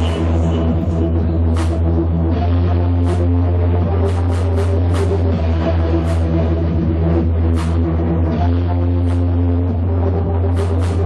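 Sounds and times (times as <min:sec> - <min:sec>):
heavy bass drone: 0:00.0 - 0:11.0.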